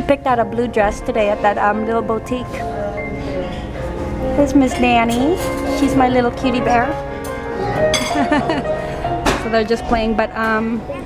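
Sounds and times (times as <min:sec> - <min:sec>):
background music with held tone: 0:00.0 - 0:11.0.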